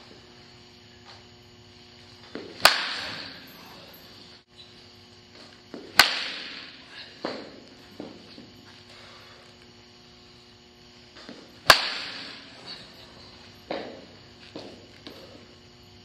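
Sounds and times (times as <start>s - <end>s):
faint steady hum: 0.0s - 16.0s
baseball bat cracking ball: 2.2s - 3.4s, 5.7s - 8.3s, 11.2s - 12.8s.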